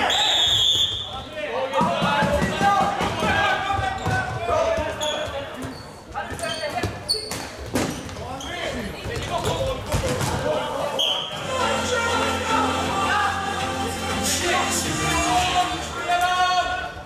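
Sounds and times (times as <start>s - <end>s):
players shouting: 0.0s - 5.1s, 10.3s - 17.0s
shoes squeaking on floor: 3.7s - 10.0s
music: 11.3s - 16.8s.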